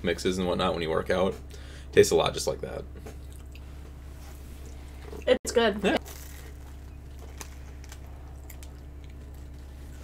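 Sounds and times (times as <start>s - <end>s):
steady low hum: 0.0s - 10.0s
biscuit crunching: 6.0s - 10.0s.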